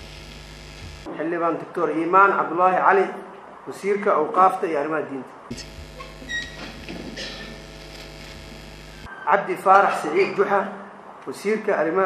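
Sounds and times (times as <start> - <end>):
electrical hum from sound system: 0.0 - 1.8, 5.5 - 9.1.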